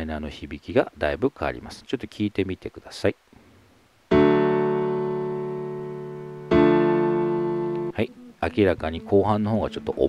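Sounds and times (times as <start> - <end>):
electric piano chords: 4.1 - 8.0.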